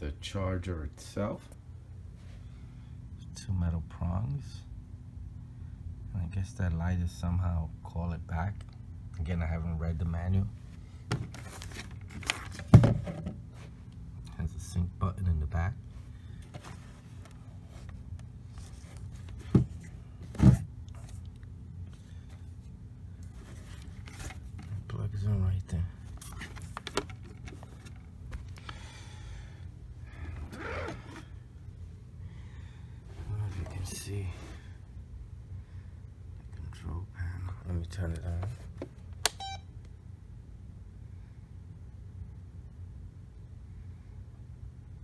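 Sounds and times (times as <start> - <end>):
low steady hum: 0.0 - 45.0
handling clicks and rustles: 26.0 - 28.8.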